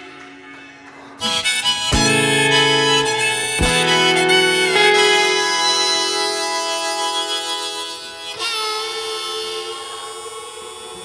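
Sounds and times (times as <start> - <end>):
acoustic and electric guitars: 1.1 - 10.1
harmonica holding a note: 1.2 - 11.0.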